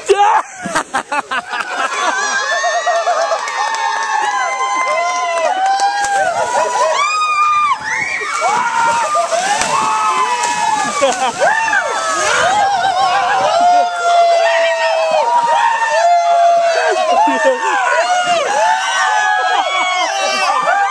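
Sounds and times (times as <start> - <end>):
water splashing in pool: 0.0 - 20.9
people shrieking and shouting: 1.3 - 20.9.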